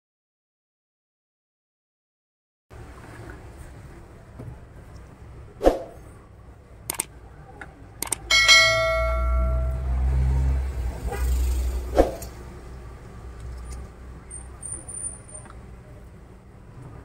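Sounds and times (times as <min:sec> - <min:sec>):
click: 0:06.9 - 0:08.2
bright bell chime: 0:08.3 - 0:10.1.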